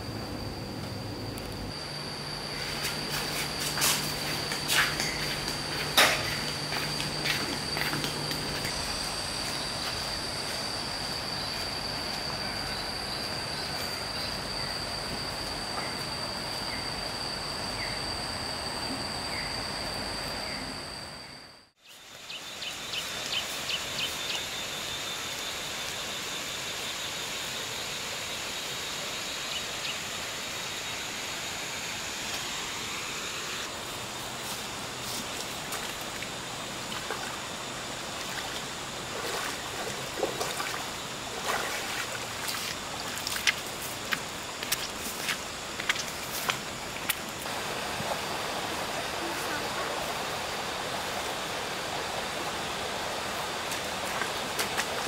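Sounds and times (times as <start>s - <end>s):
high-pitched insect drone: 0.0s - 55.0s
short insect chirps: 1.3s - 33.7s.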